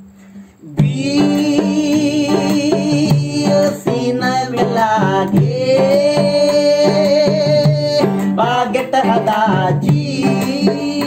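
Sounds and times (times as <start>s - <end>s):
acoustic guitar strummed: 0.0s - 11.0s
man singing: 0.6s - 11.0s.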